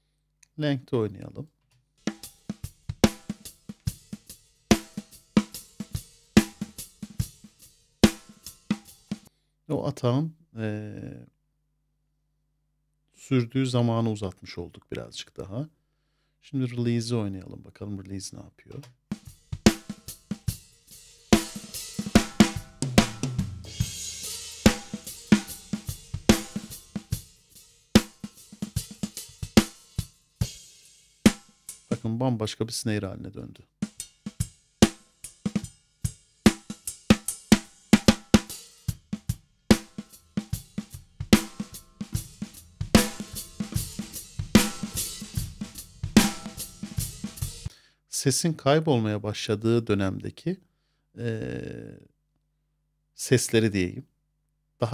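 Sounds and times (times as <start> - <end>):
drum kit playing: 2.0 - 9.3, 19.1 - 32.0, 33.8 - 47.7
hi-hat and cymbals: 2.0 - 9.3, 19.1 - 32.0, 33.8 - 47.7
kick and snare drum hits: 2.1 - 4.0, 21.4 - 24.0, 39.2 - 47.7
snare drum hits: 43.0 - 47.5.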